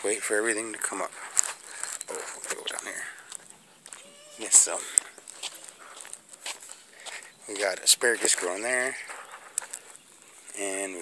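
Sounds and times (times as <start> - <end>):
footsteps on soft soil: 0.0 - 11.0.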